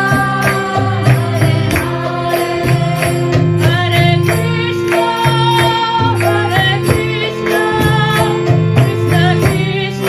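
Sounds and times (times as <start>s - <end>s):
harmonium chords: 0.0s - 10.0s
percussive beat with metallic shimmer: 0.0s - 10.0s.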